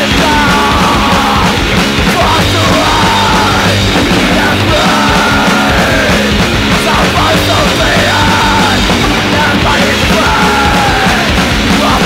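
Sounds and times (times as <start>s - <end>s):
distorted punk band: 0.0s - 12.0s
yelled vocals: 0.0s - 12.0s.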